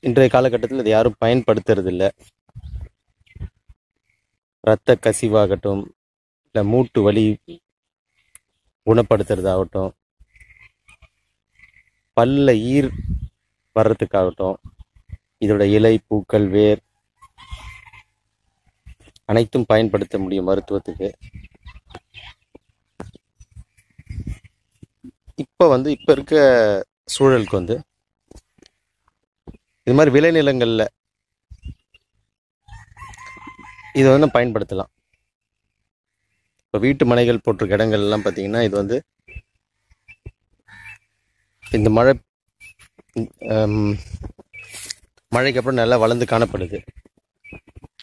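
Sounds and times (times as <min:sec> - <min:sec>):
rooster crowing: 0:32.7 - 0:34.4.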